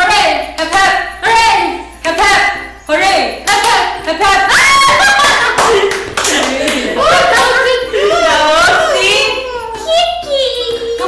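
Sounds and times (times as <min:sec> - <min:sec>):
excited women's voices: 0:00.0 - 0:09.6
hands clapping: 0:03.4 - 0:03.9, 0:04.9 - 0:07.6.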